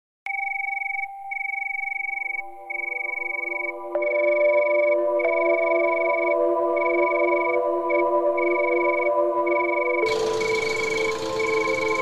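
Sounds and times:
high steady electronic tone: 0:08.4 - 0:12.0
low pulsing electronic tone: 0:10.0 - 0:12.0.

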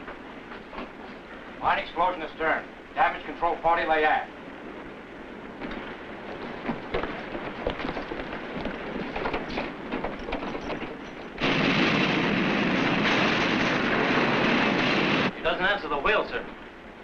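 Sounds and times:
running footsteps on steel deck: 0:00.0 - 0:01.6, 0:04.8 - 0:13.9.

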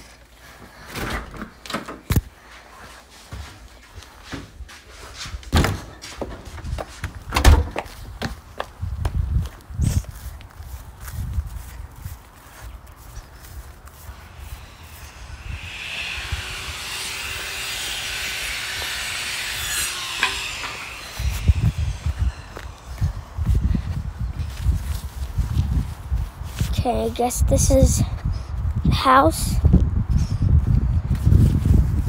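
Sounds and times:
footsteps outdoors: 0:00.0 - 0:15.9, 0:19.7 - 0:32.0.

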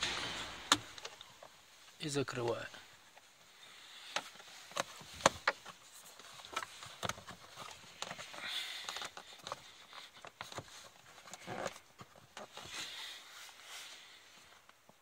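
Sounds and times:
hard plastic clicking and knocking: 0:04.1 - 0:12.6.

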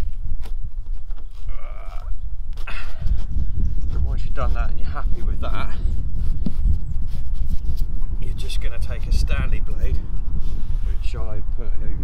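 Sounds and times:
low microphone rumble: 0:00.0 - 0:12.0
hand rubbing carpet lining: 0:03.3 - 0:08.8, 0:10.3 - 0:11.1.

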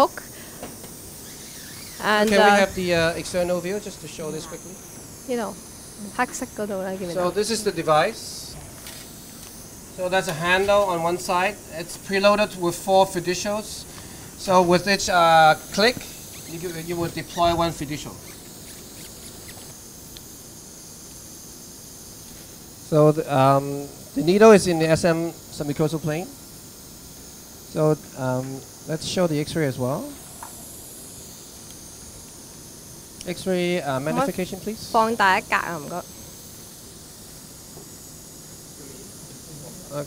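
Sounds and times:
room noise hiss: 0:00.0 - 0:40.0.

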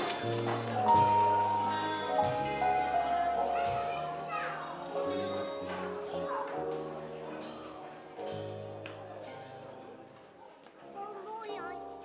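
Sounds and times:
live band held note: 0:00.0 - 0:10.1, 0:11.2 - 0:12.0
young child calling out: 0:11.0 - 0:11.9.

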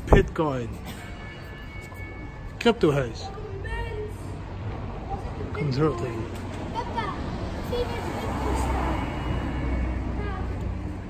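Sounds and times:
low rumble of passing traffic: 0:00.0 - 0:11.0.

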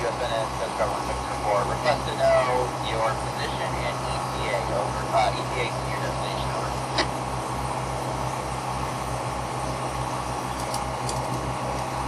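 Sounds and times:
boat engine throbbing: 0:00.0 - 0:12.0.

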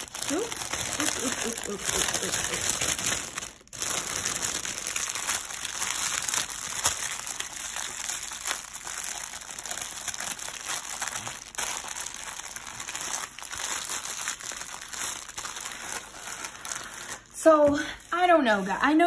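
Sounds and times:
plastic bags crinkling: 0:00.0 - 0:19.0.

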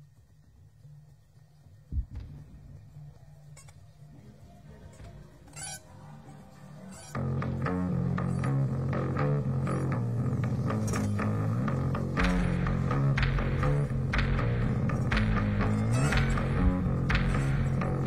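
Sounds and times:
bass guitar: 0:06.9 - 0:18.0
electric guitar: 0:07.1 - 0:18.0
low drone: 0:07.1 - 0:18.0.

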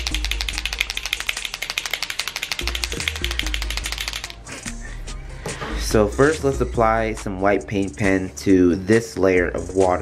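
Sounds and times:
background music with bass: 0:00.0 - 0:02.0, 0:02.6 - 0:10.0
paint marker rattling: 0:00.0 - 0:04.4.

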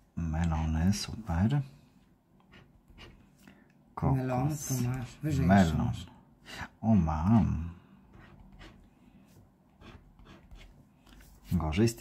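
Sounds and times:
scraping scratch card coating: 0:02.4 - 0:03.3, 0:09.8 - 0:11.6.

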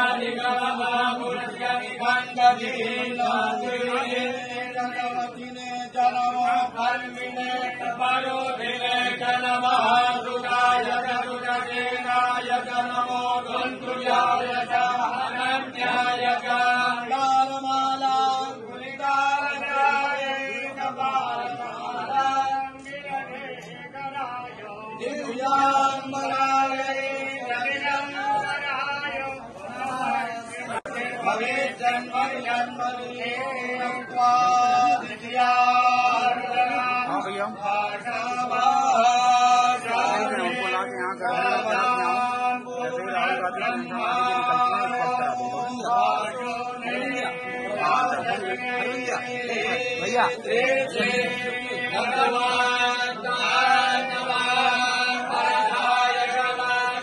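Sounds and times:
men chanting in a drone: 0:00.0 - 0:57.0.

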